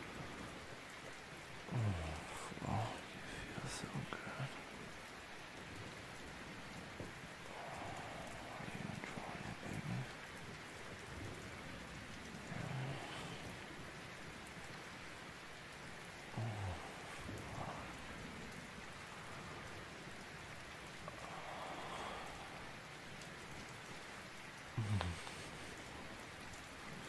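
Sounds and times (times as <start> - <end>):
steady rain patter: 0.0 - 27.0.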